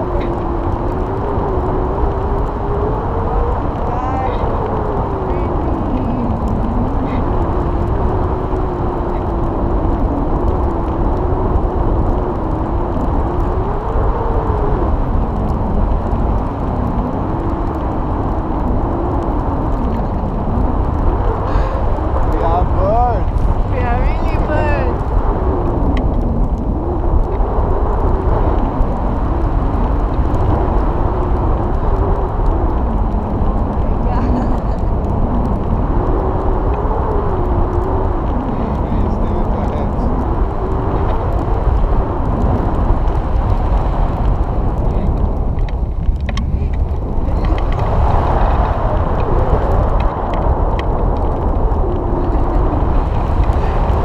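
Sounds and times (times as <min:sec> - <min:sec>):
wind noise buffeting microphone: 0:00.0 - 0:54.0.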